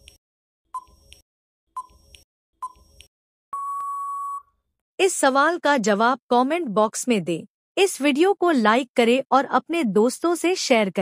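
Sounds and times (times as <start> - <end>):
long electronic beep: 3.6 - 4.5.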